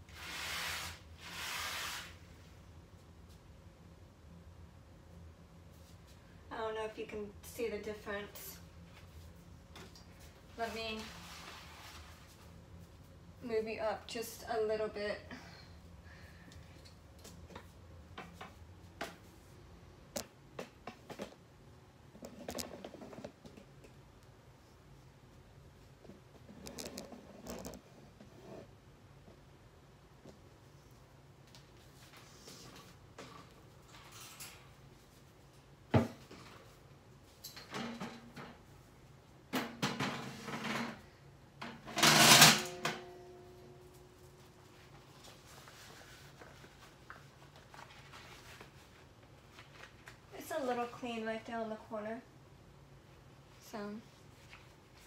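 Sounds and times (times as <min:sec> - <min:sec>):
low steady hum: 0:02.2 - 0:55.0.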